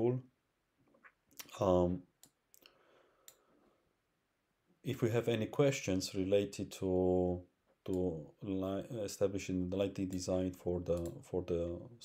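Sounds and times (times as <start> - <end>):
man speaking: 0.0 - 0.3, 1.4 - 2.1, 4.8 - 12.0
computer mouse click: 10.9 - 11.2.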